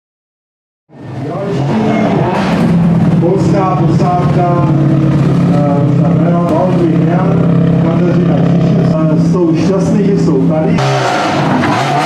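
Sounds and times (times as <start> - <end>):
rally car engines at low revs: 0.9 - 12.0.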